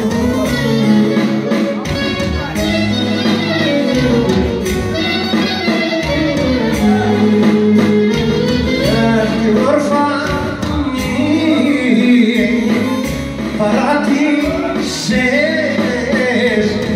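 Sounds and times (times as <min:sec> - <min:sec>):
clarinet melody: 0:00.0 - 0:10.3
bass line: 0:00.0 - 0:16.9.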